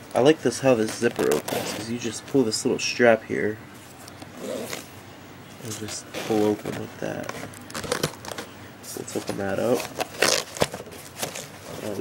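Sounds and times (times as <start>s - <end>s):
scraping rustles of packaging: 5.6s - 12.0s.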